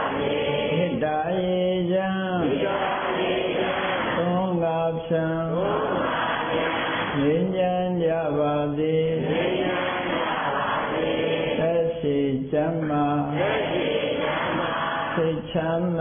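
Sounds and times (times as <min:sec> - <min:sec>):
man chanting: 0:00.7 - 0:02.7, 0:04.2 - 0:06.0, 0:07.1 - 0:09.3, 0:11.6 - 0:13.4, 0:15.2 - 0:16.0.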